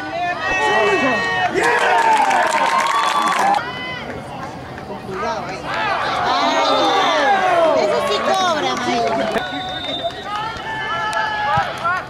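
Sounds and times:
voices shouting: 0.0s - 4.2s, 5.1s - 12.0s.

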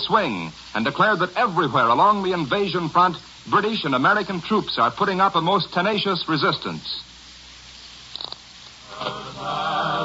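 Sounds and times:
old radio recording hiss: 0.0s - 10.0s
choir music on held notes: 8.9s - 10.0s.

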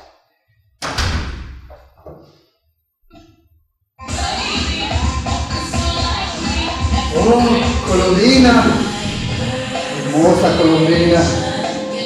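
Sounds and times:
door slamming shut: 0.8s - 1.9s.

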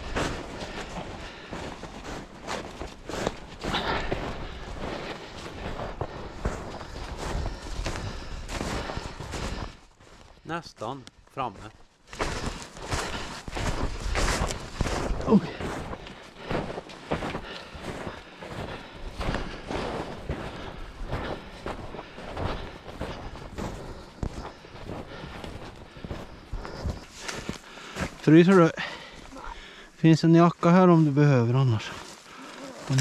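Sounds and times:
clothing and gear rustling: 0.0s - 10.4s, 11.9s - 28.4s, 31.7s - 33.0s
footsteps crunching through snow: 0.0s - 33.0s.

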